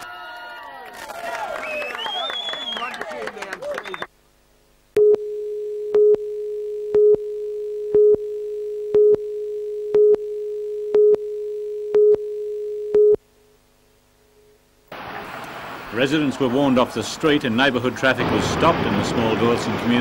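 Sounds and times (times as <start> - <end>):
countdown beeps: 5.0 - 13.2.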